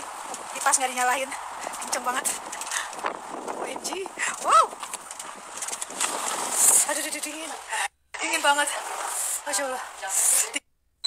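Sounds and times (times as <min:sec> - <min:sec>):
strong wind blowing: 0:00.0 - 0:07.8.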